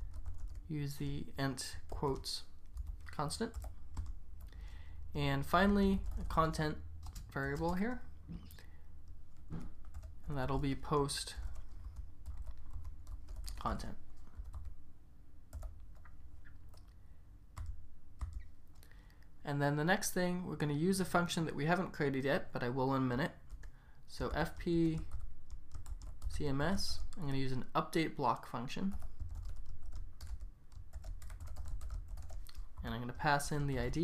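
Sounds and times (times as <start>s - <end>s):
computer keyboard typing: 0.0s - 0.7s, 1.8s - 4.6s, 5.5s - 8.0s, 9.0s - 10.7s, 11.3s - 14.8s, 15.5s - 17.0s, 17.6s - 18.9s, 24.4s - 26.4s, 28.9s - 32.9s
low steady hum: 0.0s - 34.0s
typing on a keyboard: 11.5s - 13.7s, 17.6s - 18.5s, 29.0s - 32.7s.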